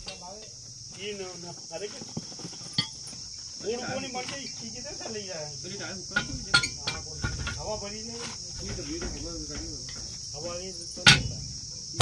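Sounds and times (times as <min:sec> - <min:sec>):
crickets chirping: 0:00.0 - 0:12.0
sharp metal clinks: 0:02.5 - 0:03.6, 0:06.0 - 0:08.1, 0:08.8 - 0:12.0.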